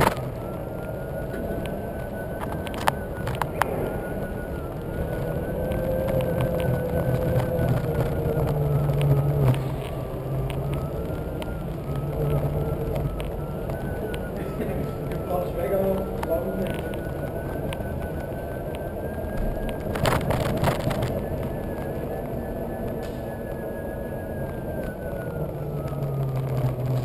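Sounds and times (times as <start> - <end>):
electric motor whine: 0.0 - 27.0
wheel rumbling on pavement: 0.0 - 27.0.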